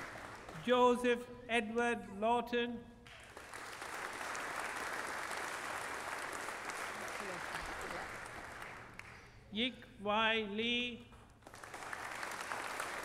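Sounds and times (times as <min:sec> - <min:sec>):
audience applauding: 0:00.0 - 0:00.7, 0:03.1 - 0:09.3, 0:11.4 - 0:13.0.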